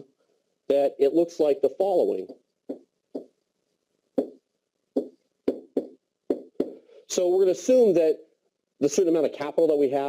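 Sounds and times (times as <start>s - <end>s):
pen tapping on whiteboard: 2.3s - 3.4s, 4.2s - 4.4s, 5.0s - 6.8s.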